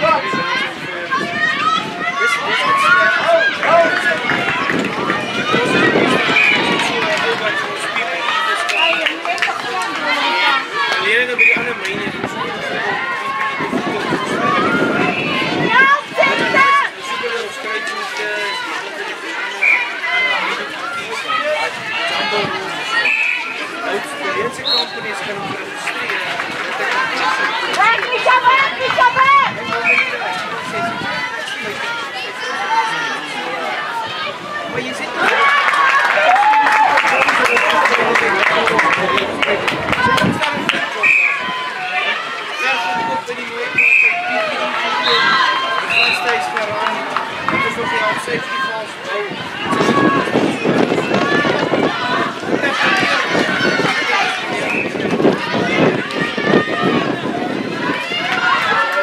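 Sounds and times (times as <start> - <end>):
women calling and shouting: 0.0 - 59.0.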